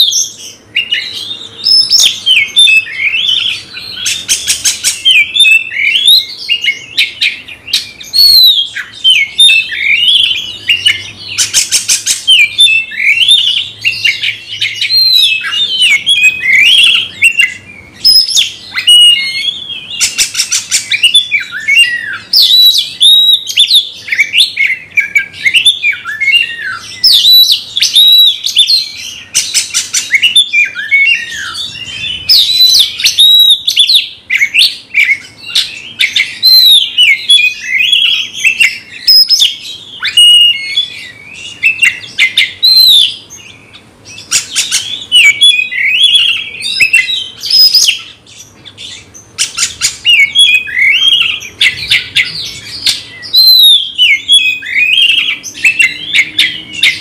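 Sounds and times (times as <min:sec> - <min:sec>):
bird singing whistles and chatter: 0:00.0 - 0:57.0.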